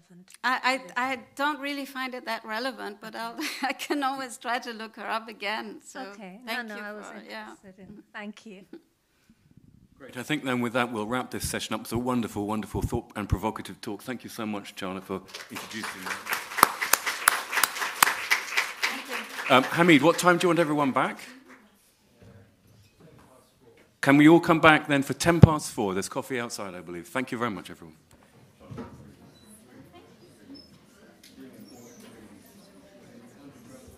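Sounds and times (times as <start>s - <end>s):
audience applause: 15.2s - 21.6s
person clapping close to microphone: 15.3s - 21.6s
murmur of audience voices: 28.4s - 33.9s.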